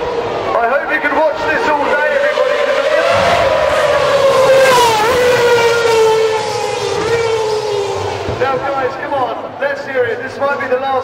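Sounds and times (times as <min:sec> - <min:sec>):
racing car engine running hard: 0:00.0 - 0:09.6.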